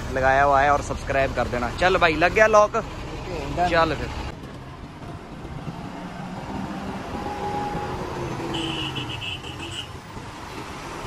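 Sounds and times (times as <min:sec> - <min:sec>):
truck diesel engine rumbling: 0:00.0 - 0:11.0.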